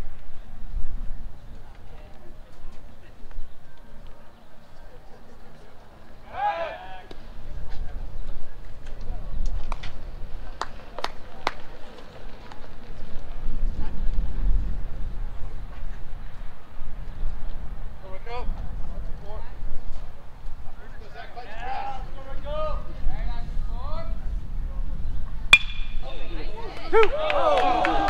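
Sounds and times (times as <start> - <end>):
wind rumble on microphone: 0.0 - 6.2, 7.0 - 28.0
person shouting: 6.3 - 7.0.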